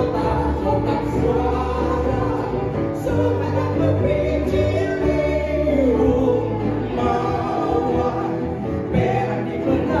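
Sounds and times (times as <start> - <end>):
bass notes: 0.0 - 10.0
woman and man singing: 0.0 - 10.0.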